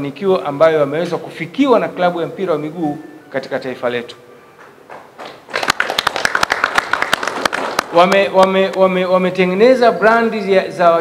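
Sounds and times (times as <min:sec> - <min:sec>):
group applause: 0:04.9 - 0:08.3.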